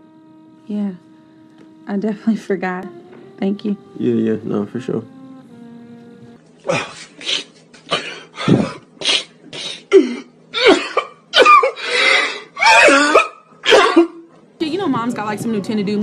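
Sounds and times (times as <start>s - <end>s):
man sobbing and wailing: 6.6s - 9.0s, 9.8s - 14.1s.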